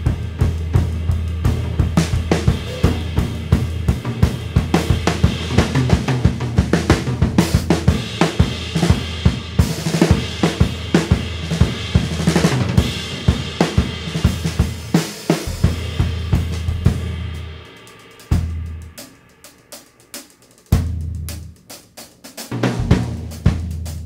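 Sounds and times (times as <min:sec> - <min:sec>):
snare and bass drum strikes: 0:00.0 - 0:17.5, 0:18.2 - 0:24.0
hi-hat and ride cymbal: 0:00.0 - 0:24.0.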